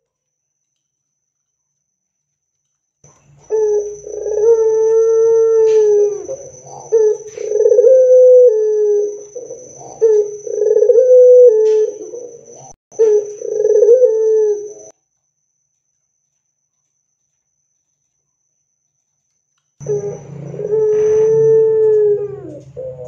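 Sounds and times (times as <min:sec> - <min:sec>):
dove cooing: 0:03.4 - 0:14.9, 0:19.8 - 0:23.0.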